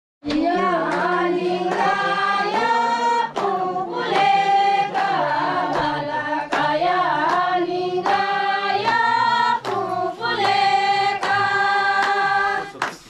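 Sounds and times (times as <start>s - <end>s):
women singing in unison: 0.2s - 12.8s
hand claps: 0.2s - 13.0s.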